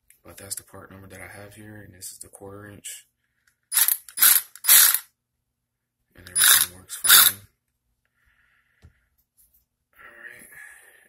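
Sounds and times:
cordless ratchet whirring: 3.7 - 5.0, 6.3 - 7.4.

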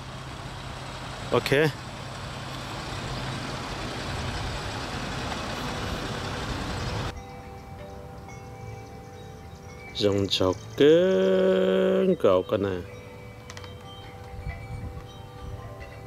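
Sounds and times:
faint steady tones: 0.0 - 16.0.

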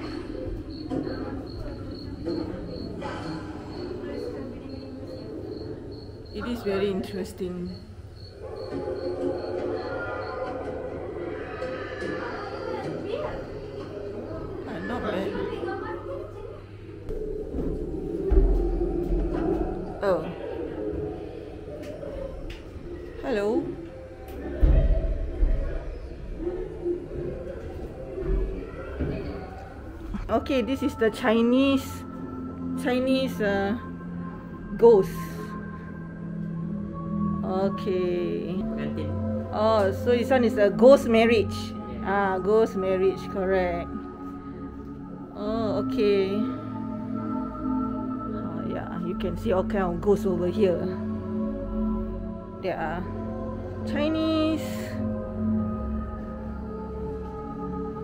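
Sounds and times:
low wavering voice-like sound: 0.0 - 7.8, 8.4 - 58.0
cricket chirping: 0.0 - 24.2.

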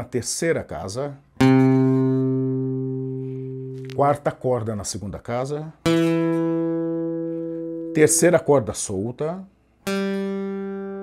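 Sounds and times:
acoustic guitar note ringing: 1.4 - 4.1, 5.8 - 8.6, 9.8 - 11.0.

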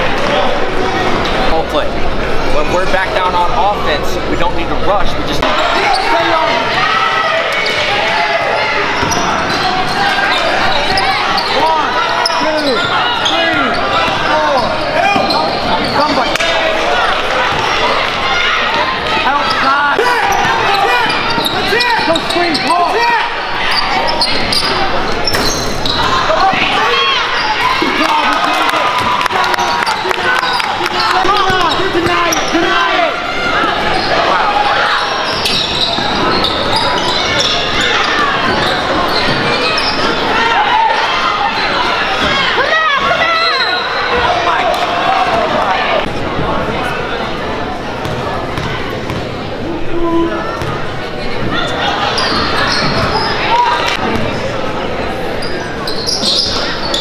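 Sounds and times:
spectators' voices echoing: 0.0 - 57.0.

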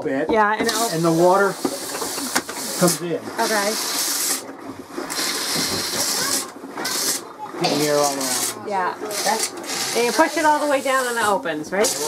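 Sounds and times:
toilet rinse water hissing: 0.6 - 12.0.

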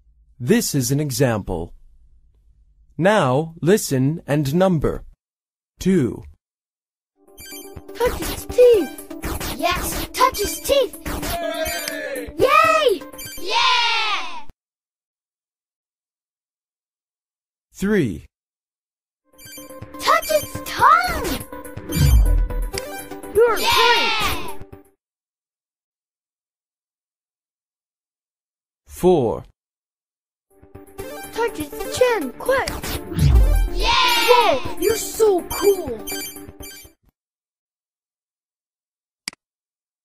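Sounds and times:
electronic track with beeping tones: 7.2 - 13.7, 19.3 - 24.8, 30.7 - 37.0
electronic ringing tones: 7.3 - 8.0, 11.5 - 12.0, 19.4 - 20.6, 21.8 - 23.3, 35.0 - 37.0.

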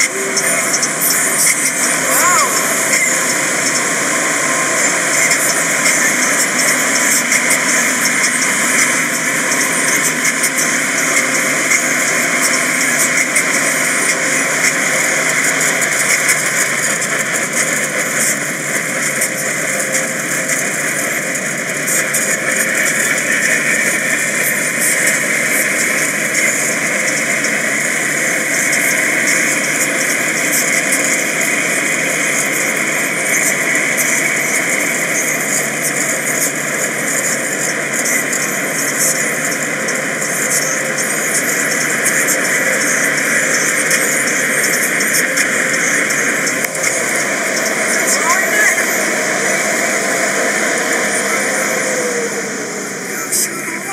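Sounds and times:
car wash dryer blowers rushing: 0.0 - 53.9.

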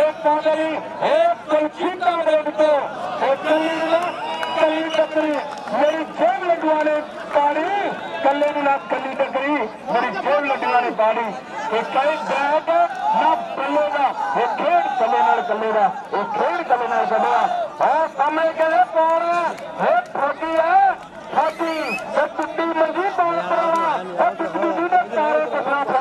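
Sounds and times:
man calling commentary: 0.0 - 26.0.

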